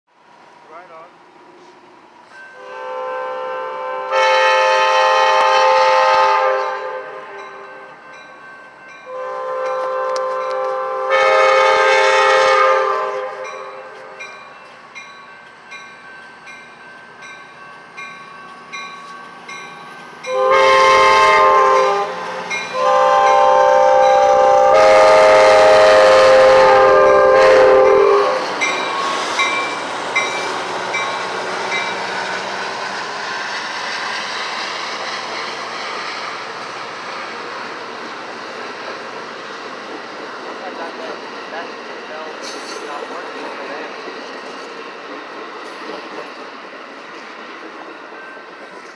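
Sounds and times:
train rumbling: 0.2 - 48.9
train air horn: 2.6 - 7.8, 9.1 - 14.3, 20.3 - 29.3
crossing bell chirps: 7.4 - 10.6, 13.4 - 20.5, 28.6 - 32.2.

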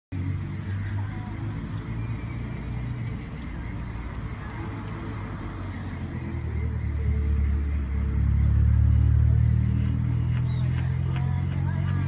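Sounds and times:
vehicle engine rumbling: 0.1 - 12.0.

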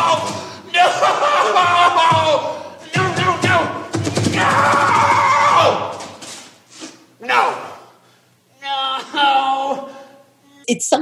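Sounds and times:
man screaming no: 0.0 - 6.0.

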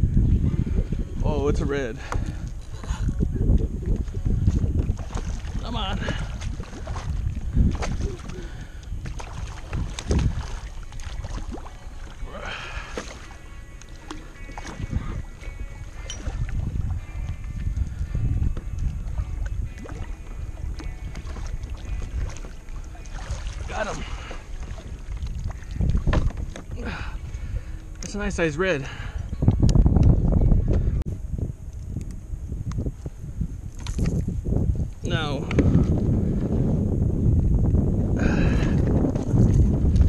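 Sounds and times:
wind rumble on microphone: 0.0 - 40.0.

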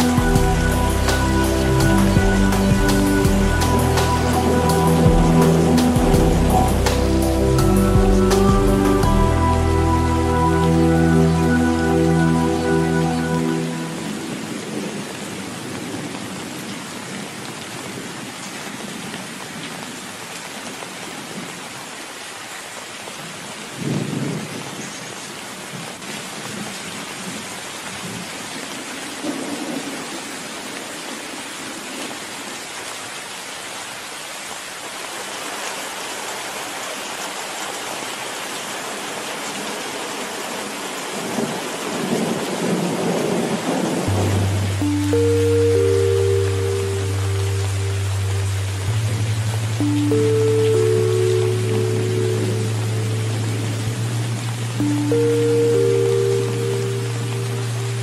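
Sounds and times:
steady rain: 0.0 - 58.0
thunder rumbling: 41.3 - 45.4.

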